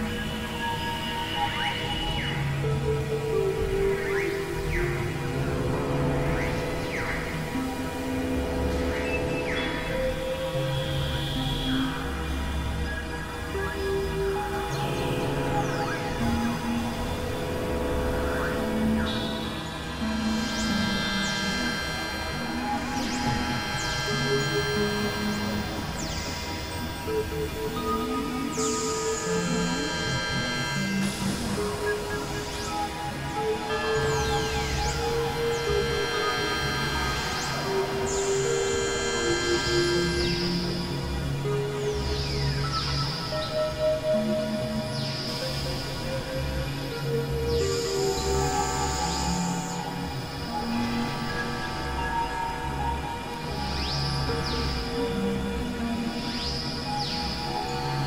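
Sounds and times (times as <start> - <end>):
electronic drone music: 0.0 - 58.0
sweeping synthesizer glides: 0.0 - 58.0.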